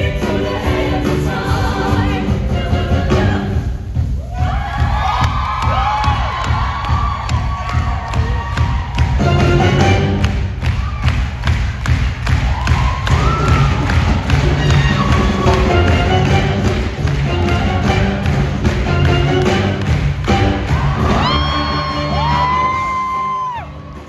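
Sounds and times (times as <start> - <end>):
upbeat musical backing track: 0.0 - 24.0
voices whooping and cheering: 4.2 - 9.2, 12.4 - 15.8, 20.7 - 24.0.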